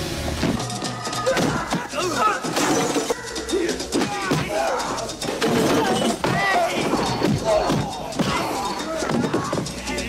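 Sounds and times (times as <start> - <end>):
shouts and grunts: 0.6 - 10.0.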